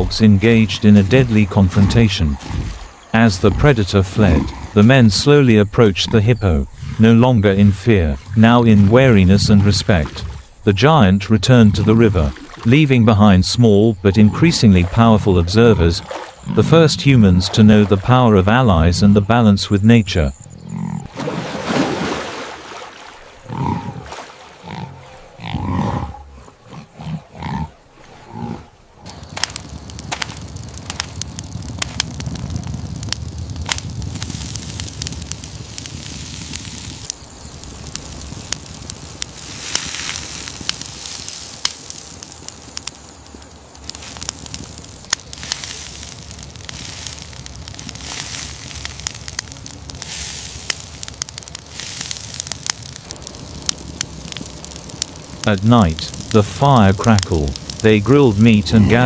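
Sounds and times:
hippo grunting: 0.0s - 12.3s, 23.4s - 28.8s, 55.4s - 59.0s
campfire crackling and popping: 0.0s - 19.2s, 29.0s - 59.0s
low rush of flame: 29.0s - 59.0s.

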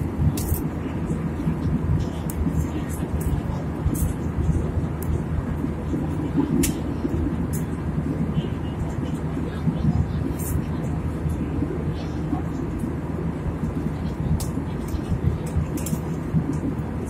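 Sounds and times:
jet cabin engine rumble: 0.0s - 17.0s.

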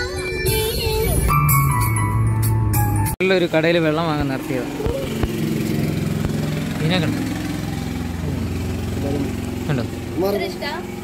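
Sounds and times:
motor humming: 4.2s - 11.0s.

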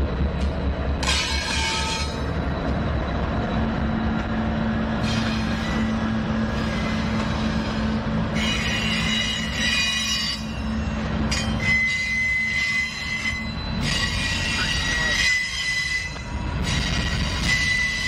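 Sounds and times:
diesel locomotives droning: 0.0s - 18.0s
high-pitched wheel squeal: 5.0s - 18.0s.

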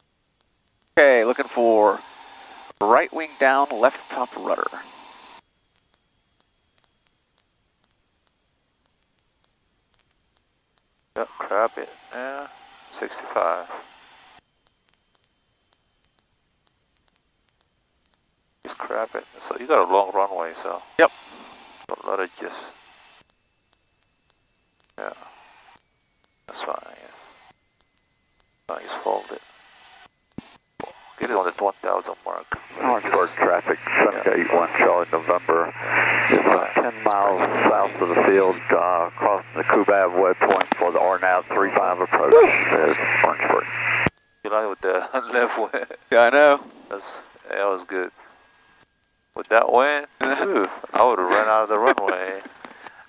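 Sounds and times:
faint ticks: 0.4s - 1.0s, 5.4s - 11.2s, 14.3s - 19.3s, 21.1s - 32.7s, 44.0s - 44.3s
headset intercom hiss: 1.0s - 5.4s, 11.2s - 14.4s, 18.6s - 23.6s, 24.9s - 25.8s, 26.4s - 27.5s, 28.7s - 53.0s
muffled voice over intercom: 31.2s - 43.7s, 44.5s - 48.1s, 49.4s - 52.5s.

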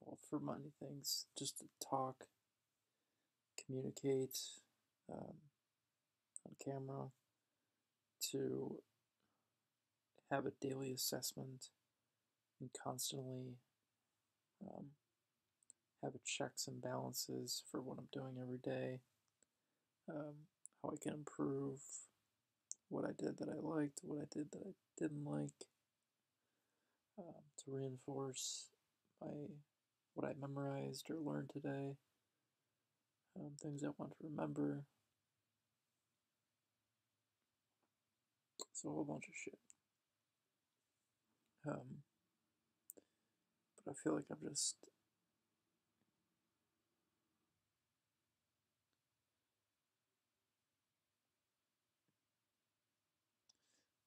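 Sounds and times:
man speaking: 0.0s - 2.2s, 3.6s - 5.4s, 6.4s - 7.1s, 8.2s - 8.8s, 10.3s - 11.7s, 12.6s - 13.6s, 14.6s - 14.9s, 16.0s - 19.0s, 20.1s - 22.0s, 22.7s - 25.6s, 27.2s - 29.6s, 30.2s - 32.0s, 33.4s - 34.9s, 38.6s - 39.6s, 41.6s - 42.0s, 43.8s - 44.9s.

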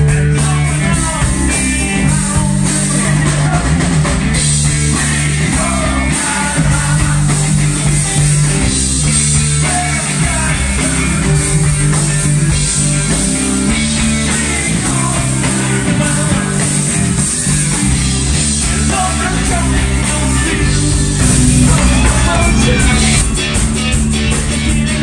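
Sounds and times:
bass guitar: 0.0s - 25.0s
drum kit: 0.0s - 25.0s
electric guitars: 0.0s - 25.0s.

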